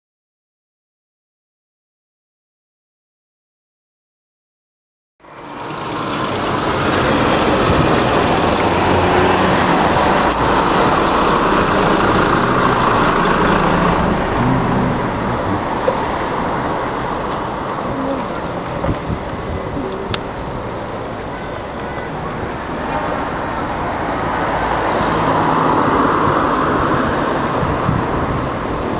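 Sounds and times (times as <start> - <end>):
bus engine running: 5.2 - 28.9
road traffic noise: 5.2 - 28.9.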